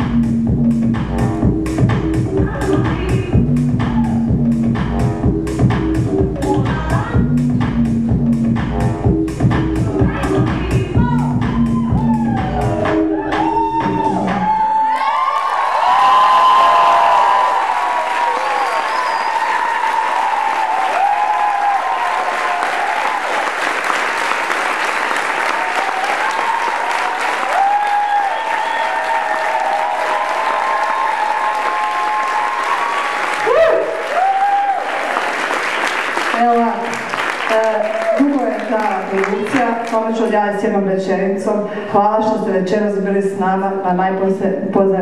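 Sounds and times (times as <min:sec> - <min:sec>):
audience whoops and shouts: 0:11.5 - 0:23.7, 0:25.4 - 0:36.0, 0:37.8 - 0:38.6
audience clapping: 0:14.8 - 0:40.2.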